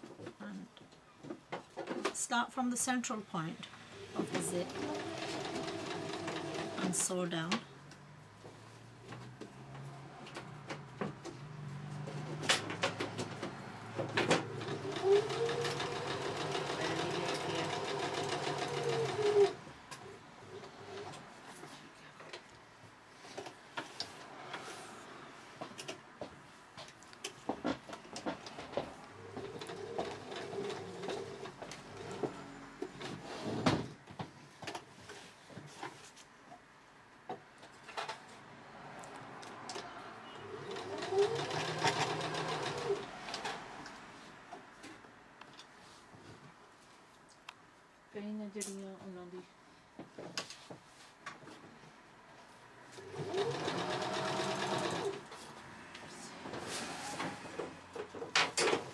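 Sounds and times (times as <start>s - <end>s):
sewing machine stitching: 4.0s - 7.1s, 14.0s - 21.2s, 29.2s - 33.6s, 40.2s - 43.6s, 53.0s - 55.3s.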